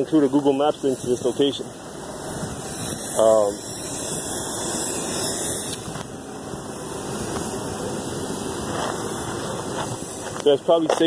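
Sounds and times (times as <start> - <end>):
roadside traffic hiss: 0.0 - 11.0.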